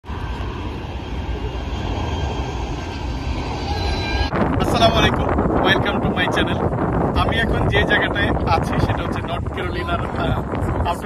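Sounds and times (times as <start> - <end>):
jet engines rumbling: 0.0 - 11.0.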